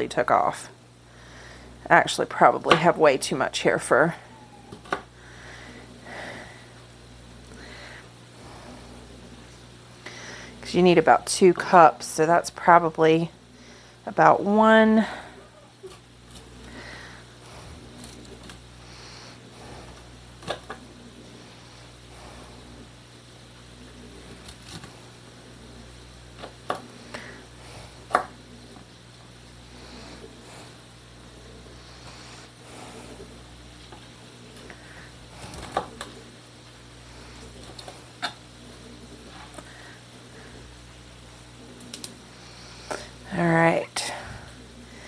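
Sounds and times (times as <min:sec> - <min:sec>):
steady low hum: 0:00.0 - 0:45.0
heavy breathing: 0:01.0 - 0:01.8, 0:05.1 - 0:09.3, 0:10.0 - 0:10.6, 0:16.6 - 0:20.2, 0:27.0 - 0:28.1, 0:29.6 - 0:33.4, 0:34.6 - 0:35.8, 0:44.0 - 0:45.0.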